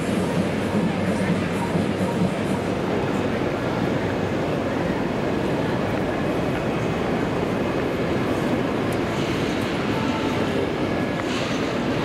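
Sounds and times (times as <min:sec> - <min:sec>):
busy city street noise: 0:00.0 - 0:12.0.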